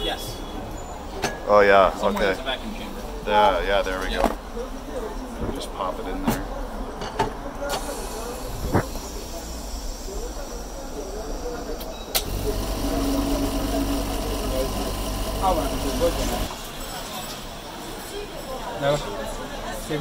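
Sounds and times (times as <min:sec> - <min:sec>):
machine humming: 0:12.2 - 0:16.5.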